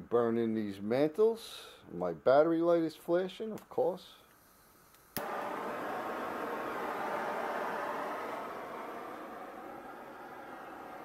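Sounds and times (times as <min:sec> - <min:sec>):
gas torch igniting click: 0:04.9 - 0:11.0
torch flame hissing: 0:05.2 - 0:11.0.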